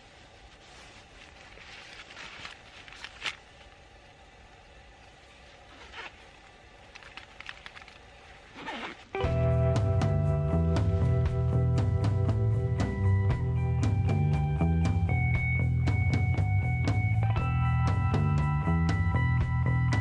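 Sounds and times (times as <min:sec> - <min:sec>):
outdoor gear rustling and clicking: 0:00.3 - 0:03.9, 0:05.4 - 0:09.2
background music with steady bass: 0:09.2 - 0:20.0.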